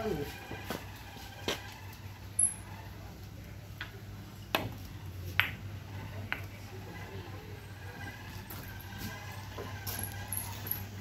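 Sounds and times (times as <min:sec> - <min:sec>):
billiard balls clacking: 0:03.8 - 0:06.6.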